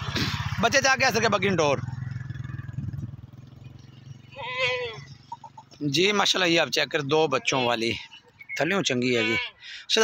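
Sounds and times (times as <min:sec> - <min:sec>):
goat bleating: 0:04.3 - 0:05.1, 0:07.2 - 0:08.0, 0:09.0 - 0:09.6.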